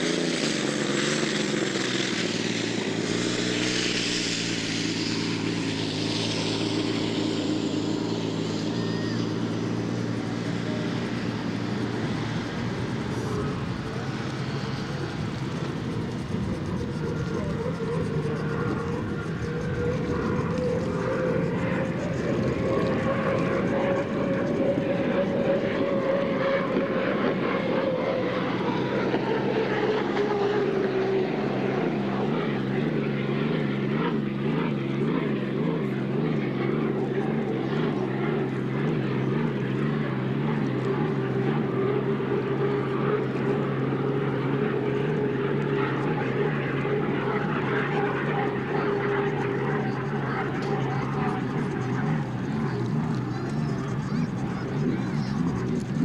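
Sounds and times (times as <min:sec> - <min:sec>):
racing boat engine drone: 0:00.0 - 0:56.0.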